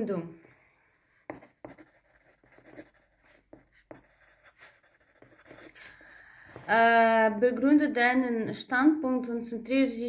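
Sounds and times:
ballpoint pen writing on paper: 0:01.2 - 0:05.9.

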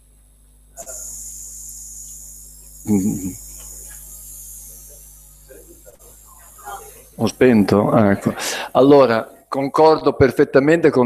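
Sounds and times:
sound system hiss and hum: 0:00.0 - 0:11.0.

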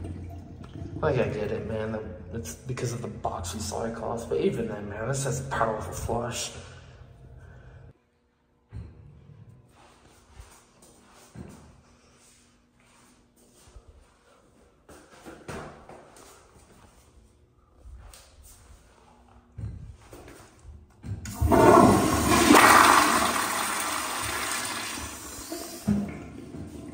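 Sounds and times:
toilet flushing: 0:00.0 - 0:04.0, 0:21.3 - 0:26.9.

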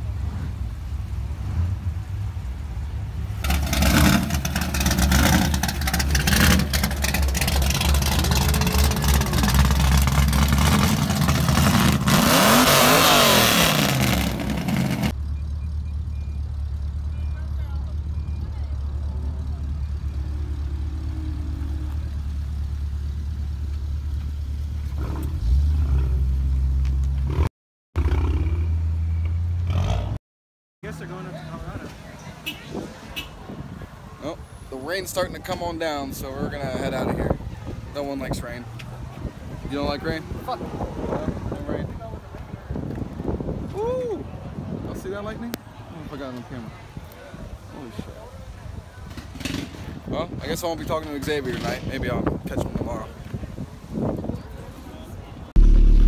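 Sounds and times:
vehicle engine revving past: 0:03.4 - 0:15.1
steady low rumble: 0:55.5 - 0:56.0.

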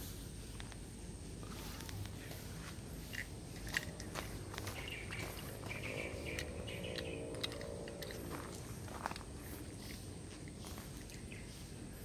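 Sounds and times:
footsteps: 0:01.4 - 0:11.8.

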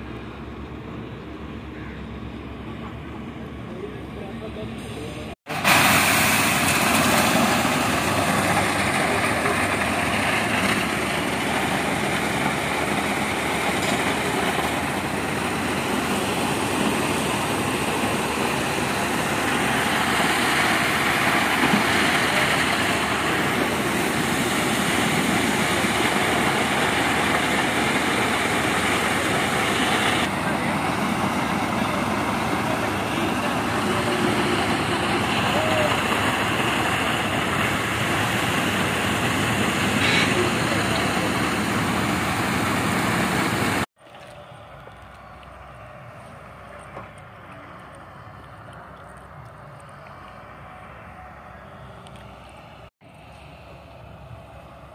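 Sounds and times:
concrete mixer truck running: 0:00.0 - 0:54.9.

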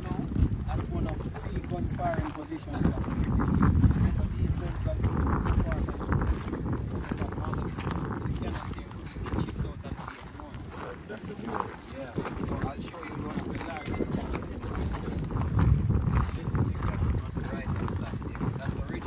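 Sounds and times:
footsteps crunching on gravel: 0:00.0 - 0:19.0
wind buffeting microphone: 0:00.0 - 0:19.0.

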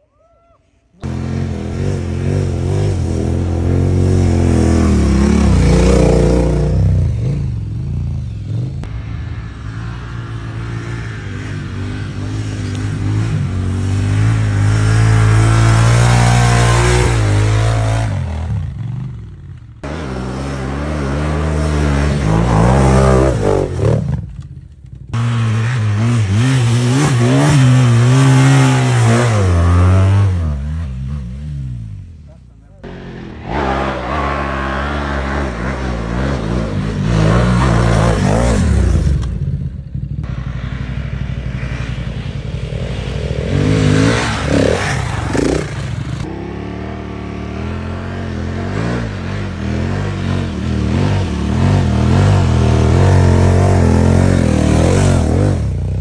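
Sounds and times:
motorcycle engines revving: 0:01.0 - 0:56.0.

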